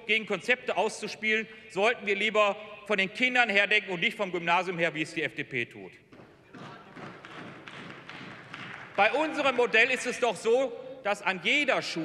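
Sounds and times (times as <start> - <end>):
applause: 6.6 - 10.1.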